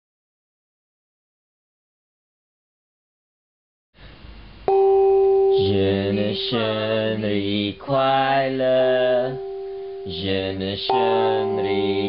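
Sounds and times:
man chanting held notes: 5.6s - 12.0s
brass gong ringing: 9.2s - 10.3s.

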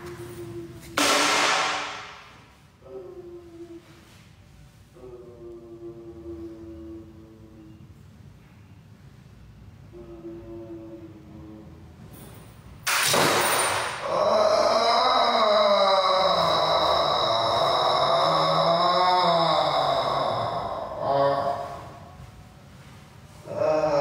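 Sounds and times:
person moaning: 0.0s - 4.2s, 5.0s - 7.9s, 9.8s - 12.0s, 13.8s - 22.2s, 23.3s - 24.0s
person vocalising harshly: 13.8s - 22.1s, 23.4s - 24.0s.

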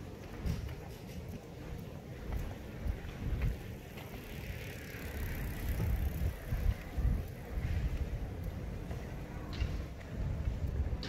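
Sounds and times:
low rumble on microphone: 0.0s - 11.0s.

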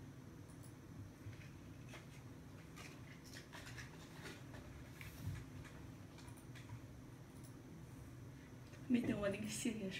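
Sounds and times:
low steady hum: 0.0s - 9.9s.

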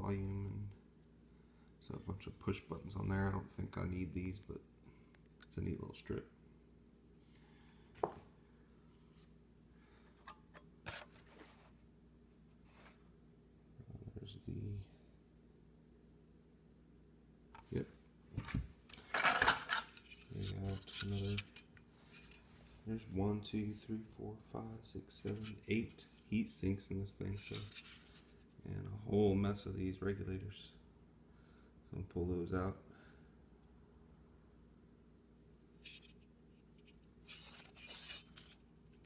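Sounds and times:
circuit board rubbing and scraping: 20.0s - 21.6s, 37.2s - 38.6s.

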